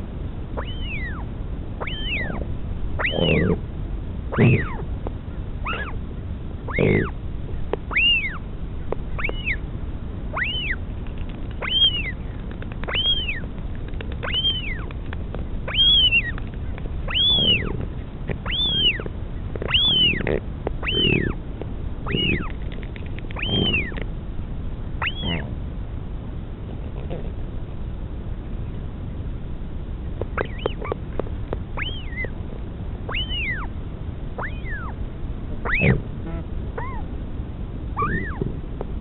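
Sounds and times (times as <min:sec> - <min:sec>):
lower bird sound: 0:00.0 - 0:24.1, 0:24.9 - 0:25.6, 0:30.1 - 0:37.1, 0:37.9 - 0:38.6
albatross chick whistled begging call: 0:00.6 - 0:02.4, 0:03.0 - 0:03.6, 0:04.3 - 0:04.8, 0:05.6 - 0:06.0, 0:06.7 - 0:07.2, 0:07.9 - 0:08.4, 0:09.2 - 0:09.6, 0:10.3 - 0:10.8, 0:11.6 - 0:12.2, 0:12.8 - 0:13.5, 0:14.2 - 0:14.9, 0:15.7 - 0:16.5, 0:17.1 - 0:17.8, 0:18.4 - 0:21.4, 0:22.1 - 0:22.6, 0:23.3 - 0:24.0, 0:25.0 - 0:25.5, 0:30.4 - 0:31.0, 0:31.8 - 0:32.4, 0:33.1 - 0:33.7, 0:34.4 - 0:35.0, 0:35.6 - 0:36.0, 0:36.8 - 0:37.0, 0:38.0 - 0:38.5.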